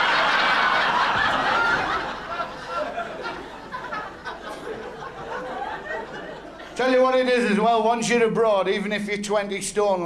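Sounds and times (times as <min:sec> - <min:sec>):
audience laughing: 0:00.0 - 0:06.8.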